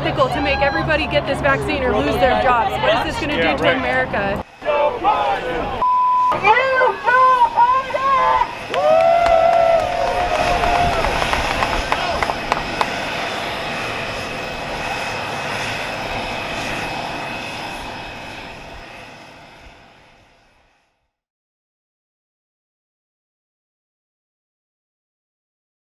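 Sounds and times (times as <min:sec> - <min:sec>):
jet engines whining: 0:00.0 - 0:20.8
people shouting: 0:04.6 - 0:12.4.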